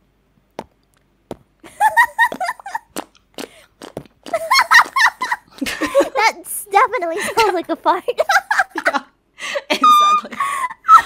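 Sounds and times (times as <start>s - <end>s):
wet lip pops: 0.5s - 1.5s, 2.3s - 4.4s
high-pitched voice squeaks: 9.8s - 11.0s.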